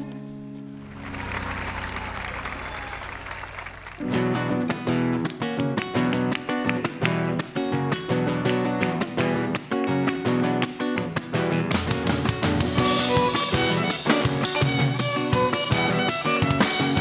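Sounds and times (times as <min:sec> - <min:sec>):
audience applauding: 0:00.8 - 0:07.2
fast strummed guitar: 0:04.0 - 0:17.0.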